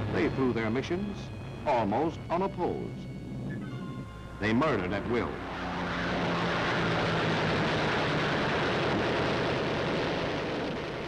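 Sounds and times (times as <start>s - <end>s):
propeller aircraft engine drone: 0.0s - 11.0s.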